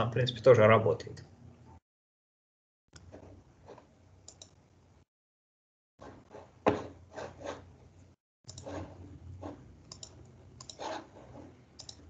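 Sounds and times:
computer mouse clicking: 0:04.2 - 0:04.6, 0:08.5 - 0:08.7, 0:09.8 - 0:10.8, 0:11.8 - 0:12.0.

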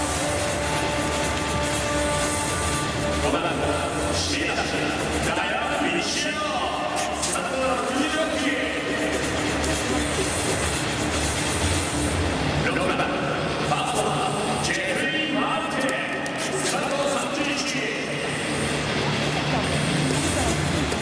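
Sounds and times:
crowd din: 0:00.0 - 0:21.0.

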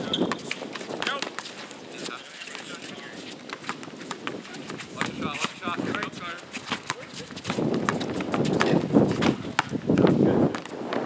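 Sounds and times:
basketball dribbling on hard court: 0:00.0 - 0:01.6, 0:03.5 - 0:10.8.

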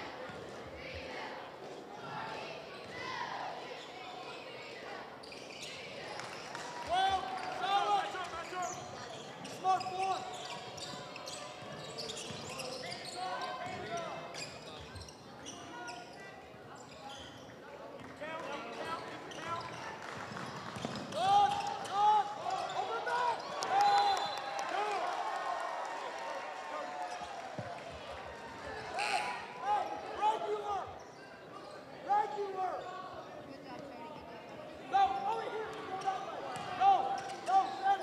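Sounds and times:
sneaker squeaks: 0:05.2 - 0:05.9, 0:08.3 - 0:17.6, 0:18.7 - 0:24.5, 0:31.0 - 0:32.0, 0:35.9 - 0:38.0.

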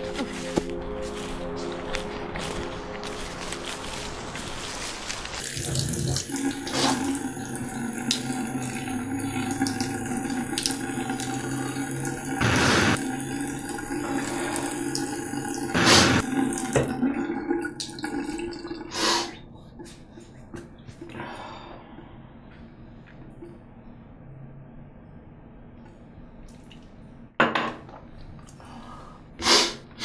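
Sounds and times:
water gushing: 0:03.2 - 0:19.3
tap water running into sink: 0:05.4 - 0:18.6.

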